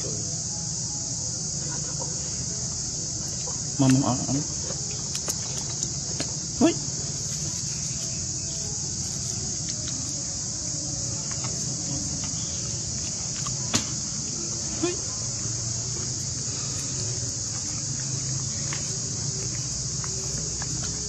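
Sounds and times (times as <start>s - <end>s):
high-pitched insect drone: 0.0s - 21.0s.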